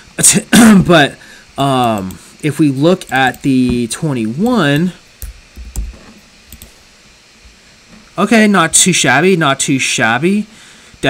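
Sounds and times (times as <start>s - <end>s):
computer keys clicking: 4.4s - 6.8s.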